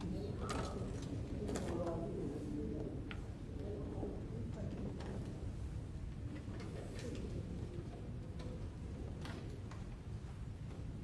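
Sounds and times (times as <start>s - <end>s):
voices murmuring in echoing church: 0.0s - 11.0s.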